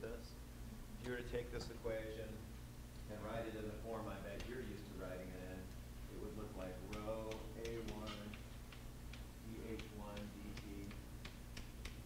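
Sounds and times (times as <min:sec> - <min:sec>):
low steady room hum: 0:00.0 - 0:12.0
light sharp clicks: 0:06.9 - 0:12.0.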